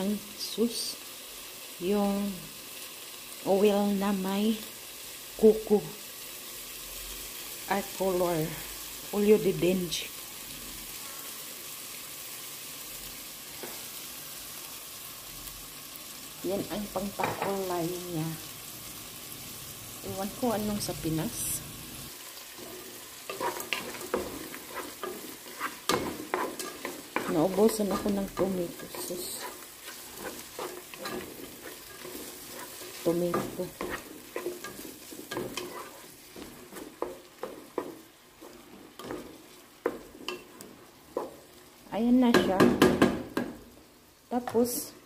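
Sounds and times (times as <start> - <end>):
onions sizzling in oil: 0.0 - 45.0
wooden spatula stirring and scraping: 22.3 - 41.7.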